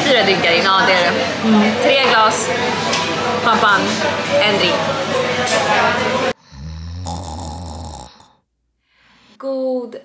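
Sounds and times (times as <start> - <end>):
crowded room chatter: 0.0 - 6.4
person snoring: 6.4 - 8.4.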